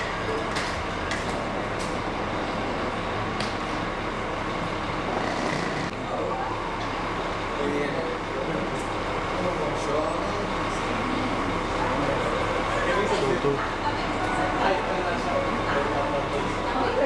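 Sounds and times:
low hum of a lobby: 0.0s - 17.0s
faint indistinct voices: 5.0s - 17.0s.

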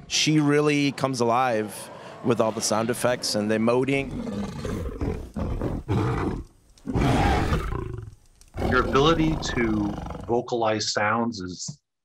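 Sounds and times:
dinosaur roar: 1.3s - 10.4s
deep rough dinosaur growls: 1.4s - 10.4s.

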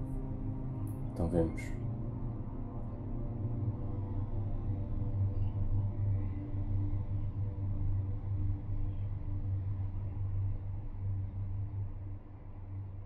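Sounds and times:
dark ambient droning hum: 0.0s - 13.0s.

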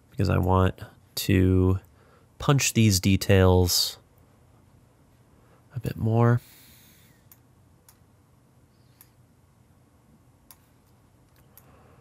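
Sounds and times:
faint computer mouse clicks: 7.2s - 8.0s, 8.9s - 9.2s, 10.5s - 11.7s.

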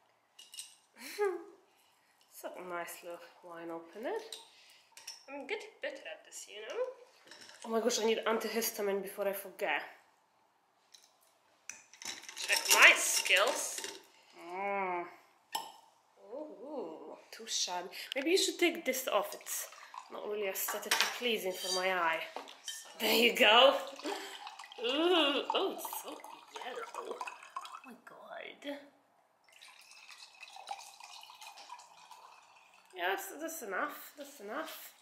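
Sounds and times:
wine pouring into glass: 19.2s - 20.9s, 21.6s - 27.9s, 29.5s - 33.3s.

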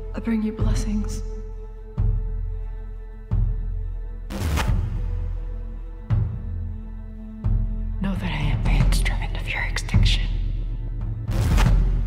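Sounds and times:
low droning music: 0.0s - 12.0s.

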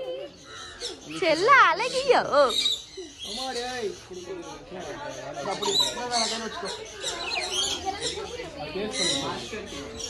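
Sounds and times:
bird calls: 0.0s - 10.0s.

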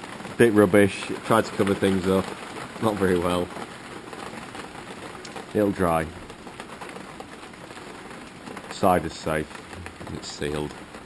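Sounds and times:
rain falling on a patio: 0.0s - 11.0s.

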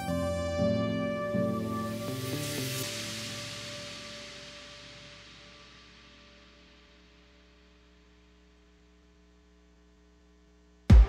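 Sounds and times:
background music: 0.0s - 6.3s
faint steady hum: 3.2s - 11.0s.

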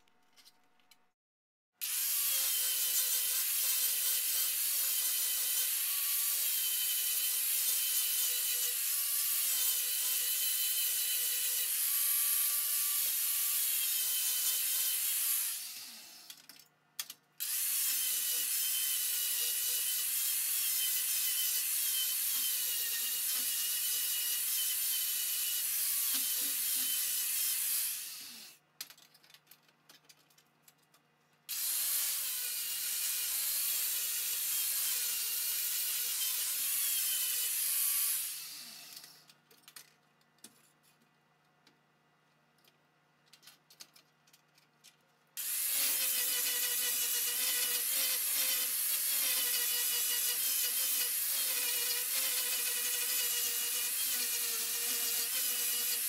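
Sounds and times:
angle grinder grinding steel: 17.4s - 28.6s, 45.4s - 56.0s.

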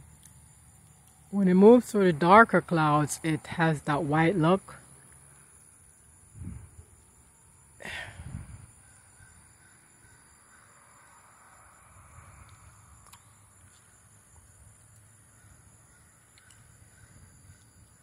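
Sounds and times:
faint distant bird calls: 4.8s - 18.0s.

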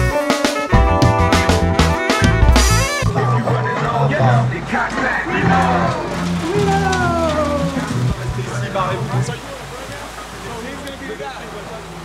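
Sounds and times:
street background noise: 2.2s - 12.0s
men arguing: 3.1s - 12.0s.

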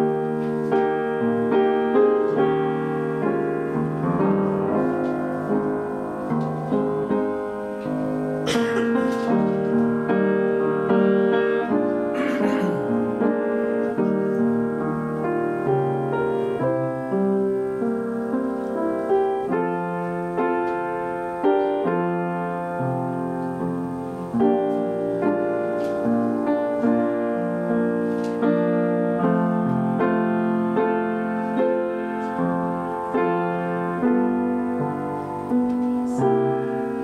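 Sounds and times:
slow solo piano: 0.0s - 37.0s.

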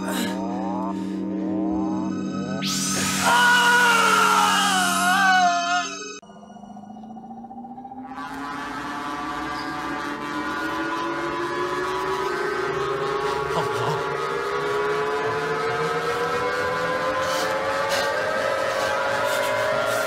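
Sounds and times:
rising electronic drone: 0.0s - 20.0s.

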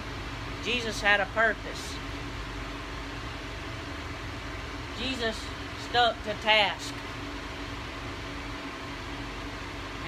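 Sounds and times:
mechanical hum and hiss: 0.0s - 10.0s.

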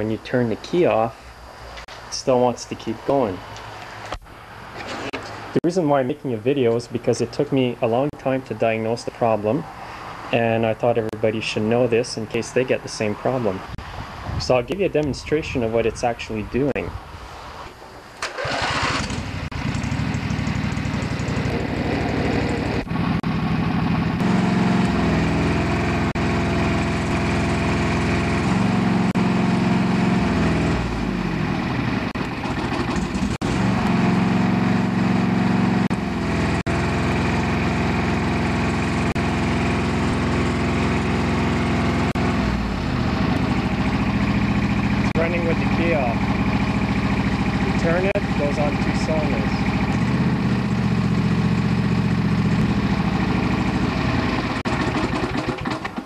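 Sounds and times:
electric starter cranking: 18.1s - 22.9s, 52.5s - 56.0s
lawn tractor engine running: 18.2s - 56.0s.

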